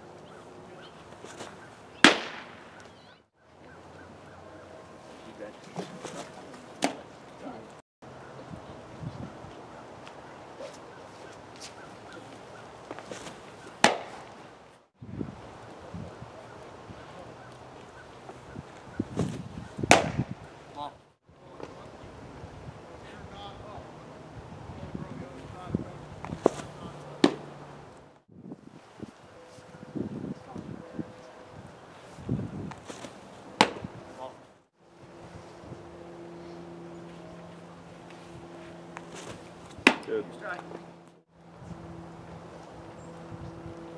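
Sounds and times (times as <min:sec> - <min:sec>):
baseball smacking into mitt: 0:01.3 - 0:02.9, 0:05.8 - 0:07.0, 0:12.9 - 0:14.4, 0:19.2 - 0:20.4, 0:26.2 - 0:27.5, 0:32.7 - 0:33.9, 0:39.0 - 0:40.1.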